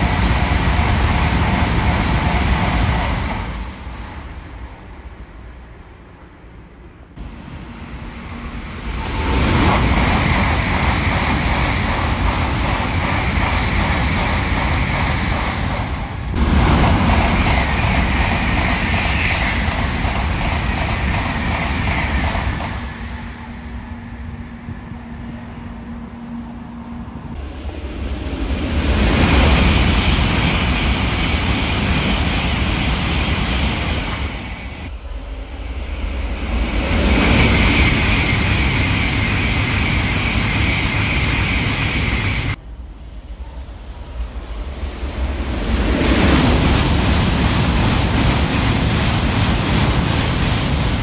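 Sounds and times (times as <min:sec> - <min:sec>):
bullet train passing at speed: 0:00.0 - 0:51.0.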